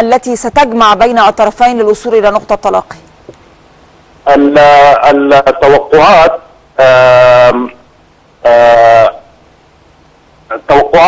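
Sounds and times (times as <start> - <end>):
man saying aah over telephone: 4.3 - 7.8, 8.4 - 9.3, 10.5 - 11.0.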